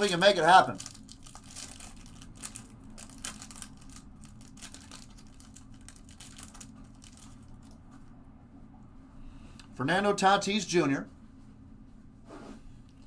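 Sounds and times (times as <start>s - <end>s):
foil wrapper crinkling: 0.0s - 7.8s
steady low hum: 0.0s - 13.0s.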